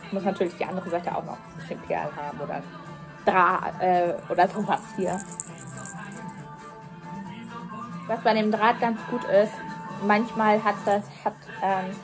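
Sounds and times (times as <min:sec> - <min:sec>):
small bells jingling: 0:00.4 - 0:01.2, 0:04.0 - 0:06.6, 0:09.5 - 0:11.0.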